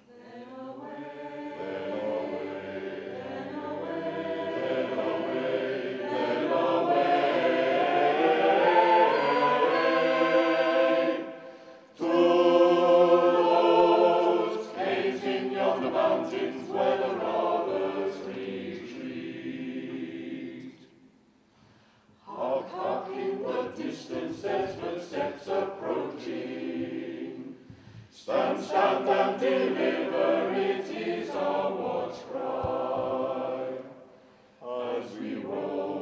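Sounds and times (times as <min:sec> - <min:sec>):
mixed choir singing a cappella: 0:00.0 - 0:21.0, 0:22.2 - 0:36.0.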